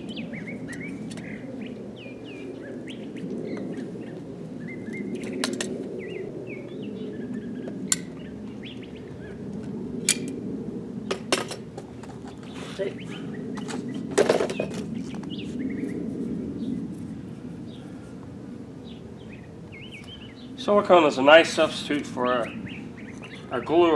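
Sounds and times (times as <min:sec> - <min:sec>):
small birds chirping: 0:00.0 - 0:09.6, 0:12.1 - 0:23.9.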